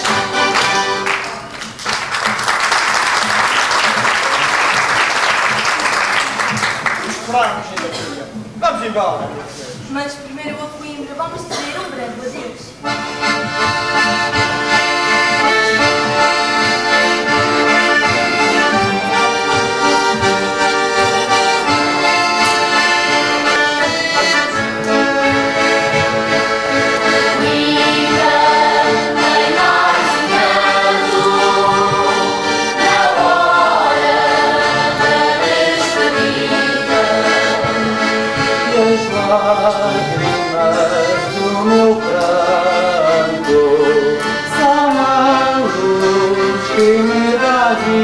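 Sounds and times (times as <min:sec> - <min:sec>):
guitars strumming: 0:00.0 - 0:01.8, 0:11.3 - 0:48.0
accordion folk dance tune: 0:00.0 - 0:48.0.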